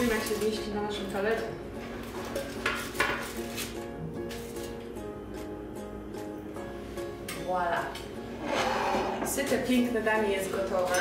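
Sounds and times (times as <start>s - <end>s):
background music: 0.0s - 11.0s
knife and spatula clinking on metal tray: 10.6s - 11.0s.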